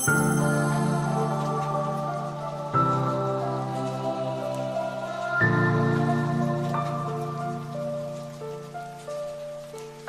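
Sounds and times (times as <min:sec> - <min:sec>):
calm outro music: 0:00.0 - 0:10.0
faint ticking hiss: 0:00.0 - 0:10.0.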